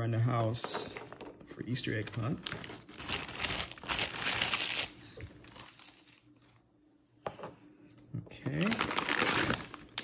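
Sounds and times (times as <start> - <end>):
plastic bag crinkling: 1.7 - 6.6, 8.5 - 10.0.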